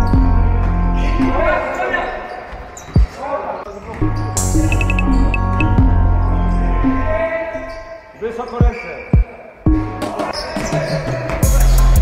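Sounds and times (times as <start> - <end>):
background music: 0.0 - 2.3, 3.7 - 8.3, 9.1 - 12.0.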